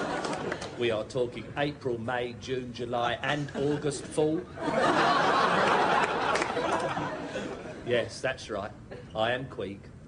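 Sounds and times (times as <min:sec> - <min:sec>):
audience laughter: 0:03.4 - 0:07.8.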